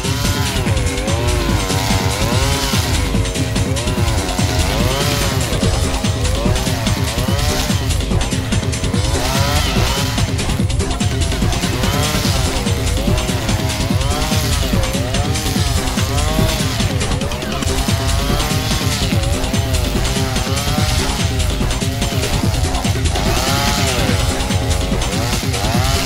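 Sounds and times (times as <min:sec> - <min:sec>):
brushcutter mowing grass: 0:00.0 - 0:26.0.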